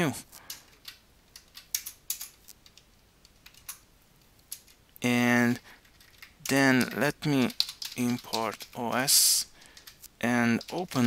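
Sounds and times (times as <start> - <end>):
computer keyboard typing: 0.4 - 3.8, 4.5 - 4.8, 5.8 - 11.0.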